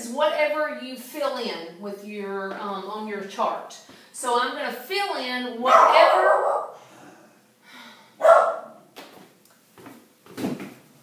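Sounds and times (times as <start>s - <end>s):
dog barking indoors: 5.6s - 6.8s, 8.2s - 8.9s.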